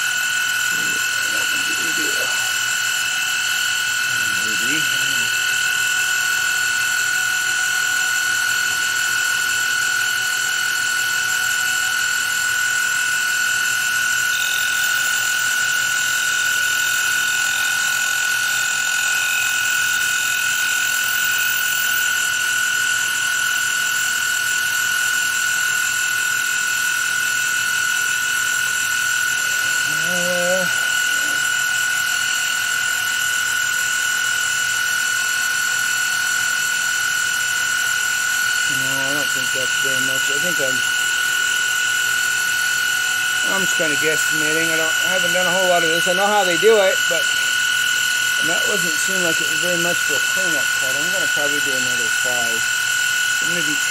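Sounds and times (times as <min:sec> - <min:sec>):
milling machine whining: 0:00.0 - 0:53.9.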